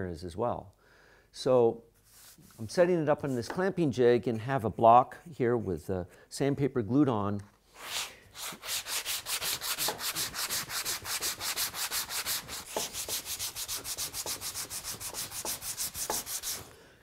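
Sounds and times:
sandpaper scraping on wood: 7.7s - 16.7s.

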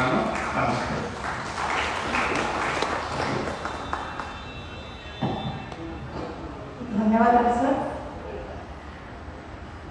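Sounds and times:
audience applauding: 0.0s - 4.8s.

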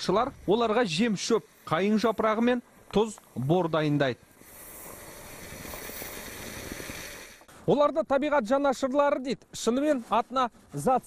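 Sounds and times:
steady outdoor hiss: 0.0s - 11.0s.

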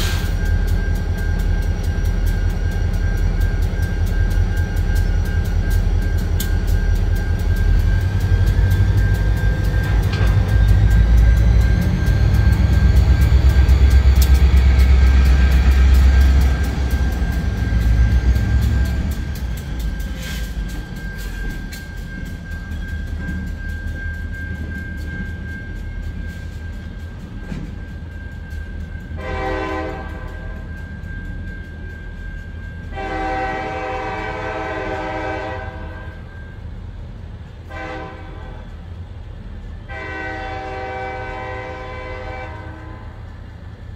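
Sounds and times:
freight locomotives rumbling: 0.0s - 43.9s
locomotive horn: 29.2s - 30.7s, 32.9s - 36.3s, 37.6s - 38.6s, 39.9s - 43.2s.

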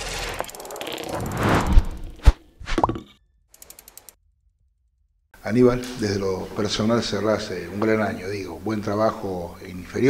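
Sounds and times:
quick ratchet-like clicks: 3.6s - 4.2s.

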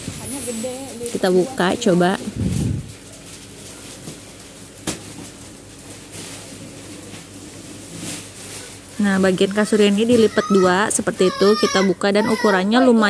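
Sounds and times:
thick plastic wrapping rustling: 0.0s - 13.0s.

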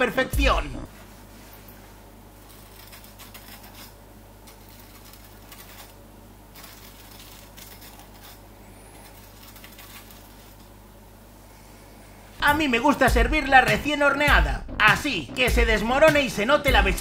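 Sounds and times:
knife crunching cheese crust: 2.4s - 10.8s.

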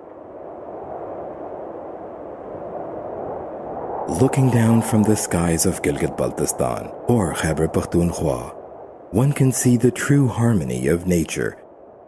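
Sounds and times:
rushing noise: 3.8s - 11.4s.

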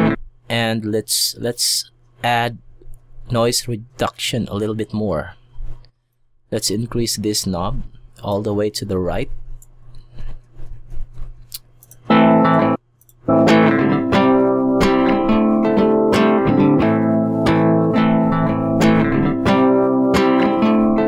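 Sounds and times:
guitar music: 0.0s - 0.2s, 12.1s - 21.0s.

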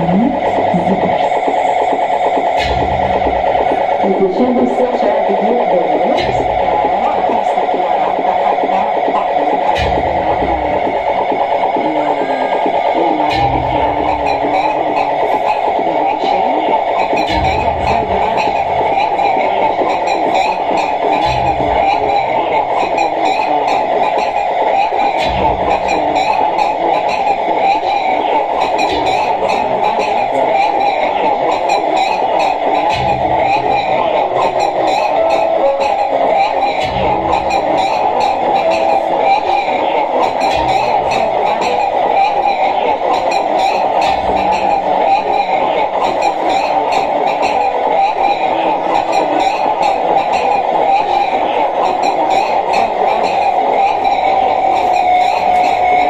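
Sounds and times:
dense wash of electronic noise: 0.0s - 56.0s
low electronic pulse: 0.0s - 56.0s.

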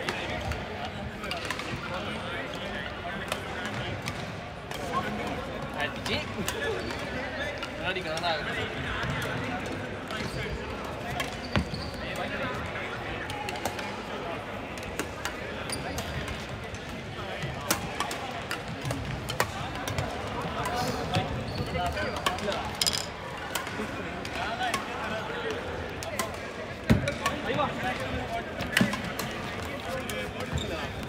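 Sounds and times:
players' voices: 0.0s - 31.0s.

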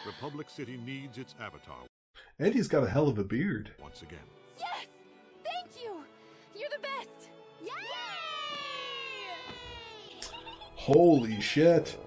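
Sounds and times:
children cheering yay: 7.6s - 10.4s.

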